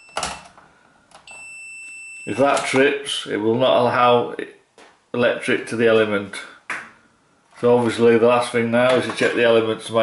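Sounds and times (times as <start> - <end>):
multimeter continuity beep: 0.0 - 0.5, 1.3 - 2.7.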